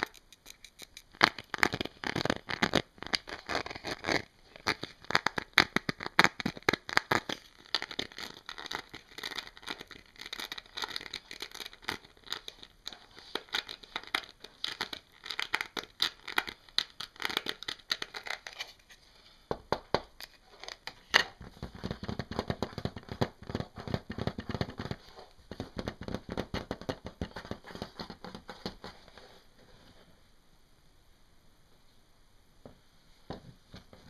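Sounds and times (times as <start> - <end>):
fingernails scratching and tapping mask: 0.0 - 19.0, 20.2 - 29.4.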